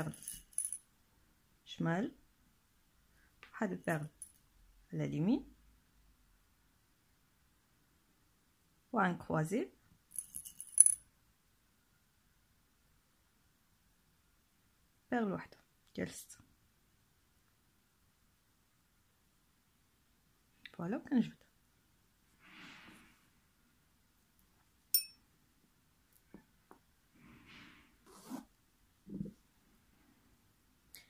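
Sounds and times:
beads clinking against glass bowl: 0.0 - 0.8, 3.8 - 4.4, 10.1 - 11.0, 24.9 - 25.2
glass bowl clinking: 24.9 - 25.2.

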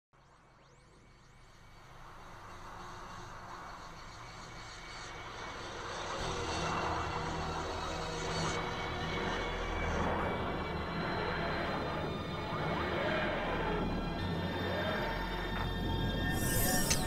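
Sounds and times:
low rumbling drone with hiss: 1.7 - 17.0.

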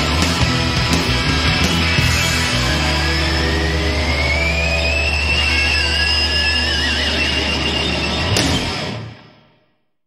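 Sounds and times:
distorted rock chord and bass: 0.0 - 9.6
whining guitar feedback: 0.0 - 9.6.

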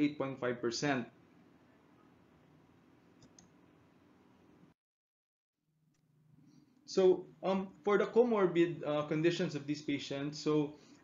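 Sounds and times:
small clicks: 3.2 - 3.6.

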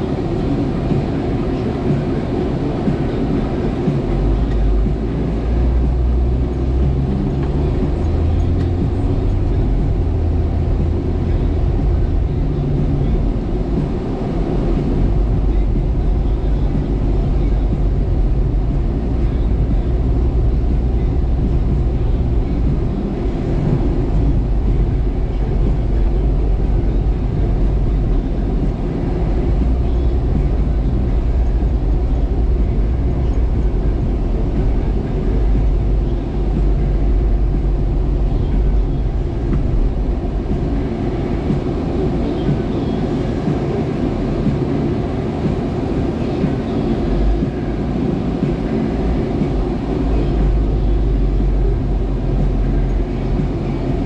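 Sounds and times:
car engine and road noise: 0.0 - 54.0.

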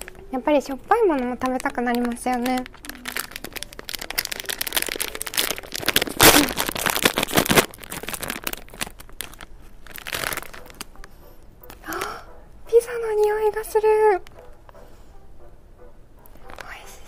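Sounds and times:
plastic snack bag crinkling: 0.0 - 12.2, 16.4 - 16.9
bag tearing open: 1.6 - 11.1.

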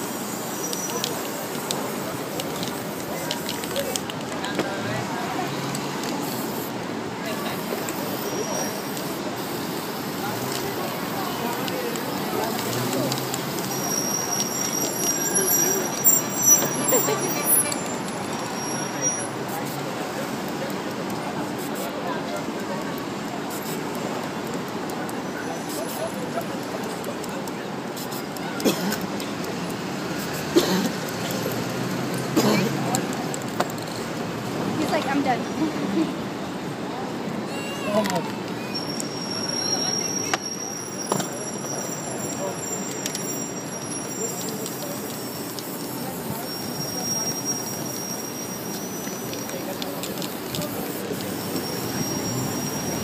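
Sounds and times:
spray paint can hissing: 0.0 - 4.4, 5.7 - 22.0, 23.2 - 32.3, 38.8 - 53.0
traffic noise: 0.0 - 53.0
indistinct voices: 0.1 - 53.0.

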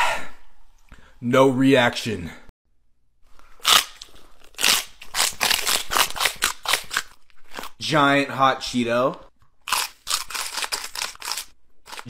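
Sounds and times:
chips crunching being chewed: 3.5 - 7.8, 9.7 - 12.0.

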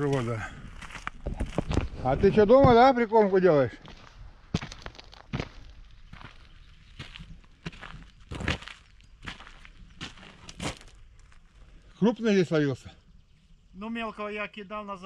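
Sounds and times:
footsteps through dry grass: 0.0 - 11.7.

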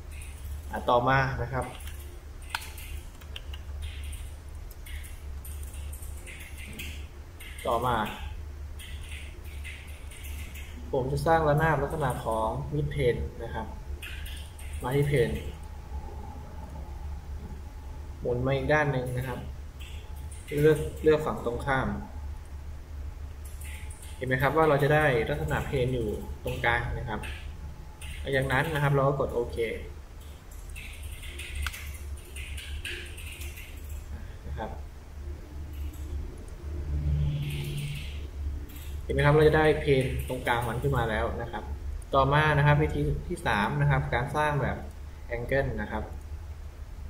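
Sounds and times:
low electrical hum: 0.0 - 47.0.

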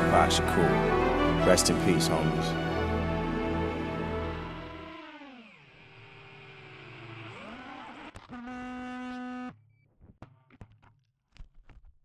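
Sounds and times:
drone motors whining: 2.6 - 9.6.

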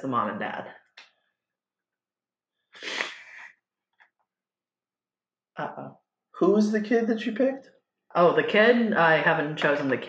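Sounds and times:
person breath burst: 2.8 - 3.5.

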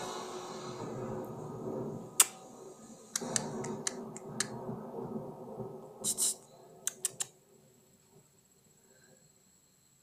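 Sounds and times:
sharp clicks: 6.1 - 7.3.

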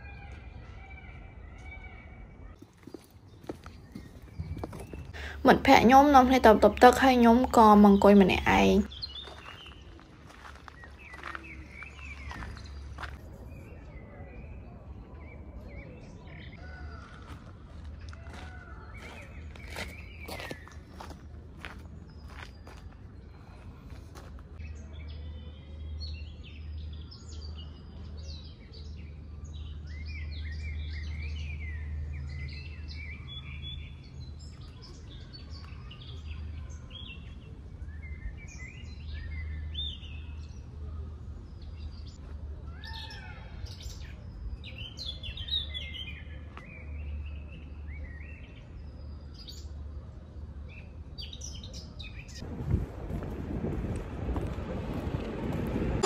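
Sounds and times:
songbirds chirping and singing: 0.0 - 52.5.

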